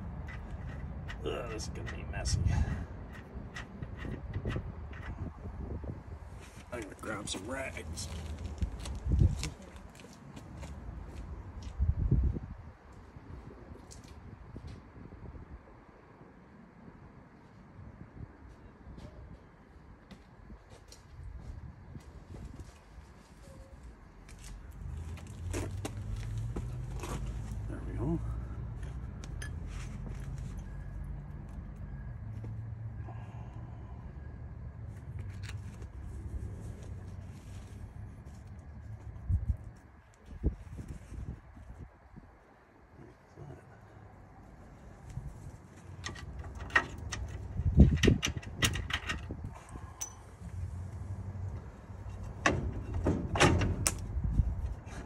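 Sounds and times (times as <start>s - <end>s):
low engine-like hum: 23.4s - 40.6s.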